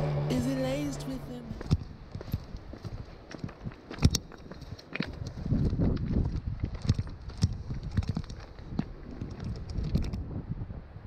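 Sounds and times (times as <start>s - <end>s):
footsteps on stony path: 1.4s - 10.3s.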